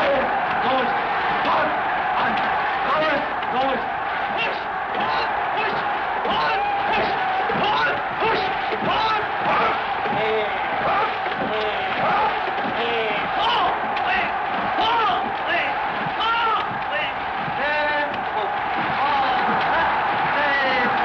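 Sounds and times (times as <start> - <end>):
background noise: 0.0 - 21.0
man shouting through megaphone: 0.0 - 21.0.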